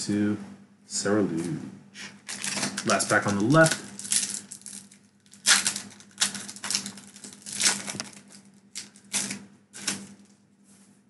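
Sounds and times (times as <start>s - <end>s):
foil pack tearing and crinkling: 2.2s - 10.4s.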